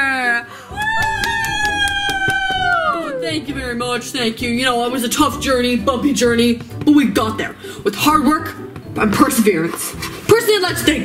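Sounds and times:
hand clapping: 0:00.8 - 0:02.9
high voice cheering: 0:00.8 - 0:03.5.

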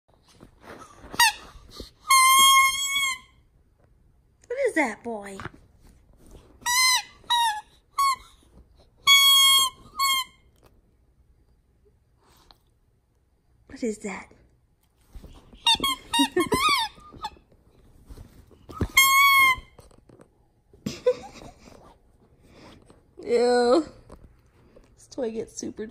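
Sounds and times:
soft rustling: 0:00.1 - 0:02.0, 0:05.2 - 0:07.3, 0:14.8 - 0:25.6
dog toy squeaking: 0:01.0 - 0:03.4, 0:06.6 - 0:08.4, 0:09.0 - 0:10.5, 0:15.6 - 0:17.4, 0:18.7 - 0:19.8.

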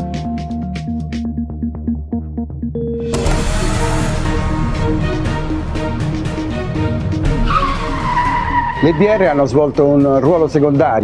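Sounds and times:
film trailer music: 0:00.0 - 0:11.0
low boom: 0:03.1 - 0:07.2
car tyres screeching: 0:05.2 - 0:10.3.

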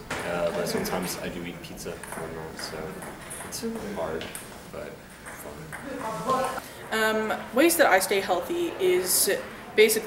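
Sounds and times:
man speaking: 0:00.0 - 0:06.6.

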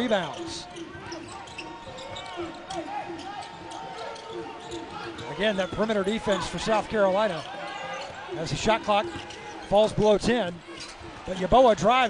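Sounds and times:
arena ambience: 0:00.0 - 0:12.0
players and crowd voices: 0:00.0 - 0:12.0.

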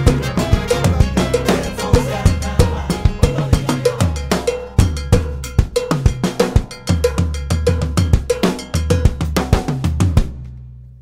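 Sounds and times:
salsa band music: 0:00.0 - 0:07.2
cowbell struck: 0:00.0 - 0:09.4
drum kit and timbales: 0:00.0 - 0:10.4.

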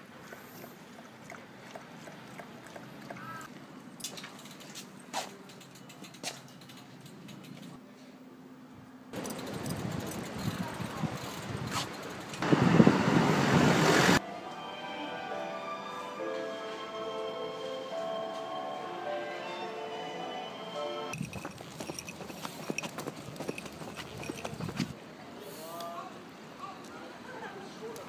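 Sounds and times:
outdoor street noise hiss: 0:00.0 - 0:28.0
footsteps on asphalt: 0:21.2 - 0:25.0.

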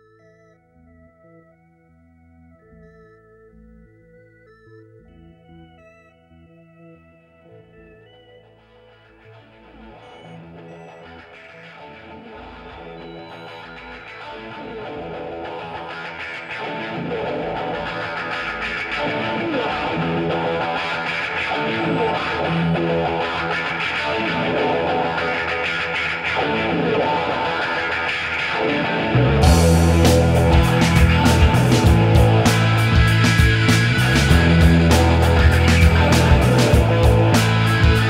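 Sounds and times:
effected electric guitar: 0:00.0 - 0:38.0
rock music intro: 0:14.4 - 0:38.0.

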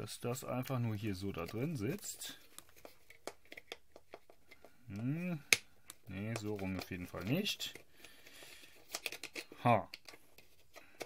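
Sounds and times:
plastic clicks and taps: 0:02.5 - 0:07.0.

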